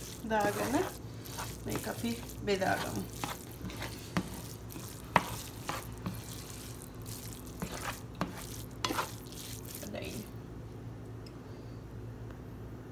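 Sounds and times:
spatula scraping rice in a pan: 0:00.0 - 0:10.3
low steady hum: 0:00.0 - 0:12.9.

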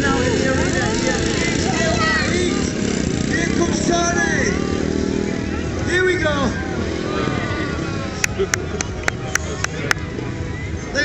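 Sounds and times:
motorcycle engines running: 0:00.0 - 0:11.0
voices: 0:00.0 - 0:11.0.

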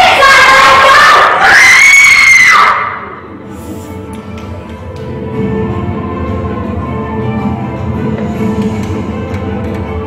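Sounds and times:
shrill human scream: 0:00.0 - 0:03.0.

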